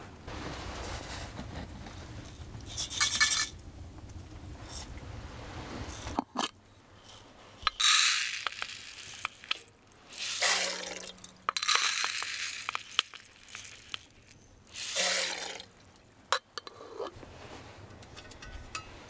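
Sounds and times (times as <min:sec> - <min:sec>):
dry granules pouring: 0:07.0 - 0:15.7
glass and metal clinks: 0:18.2 - 0:19.0.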